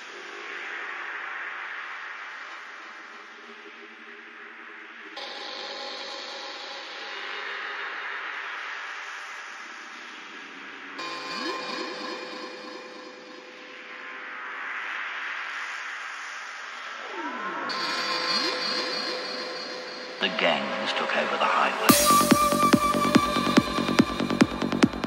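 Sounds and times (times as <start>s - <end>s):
filtered synth noise washes: 0.0s - 25.0s
gliding synth lines: 16.5s - 25.0s
held synth tones: 17.0s - 25.0s.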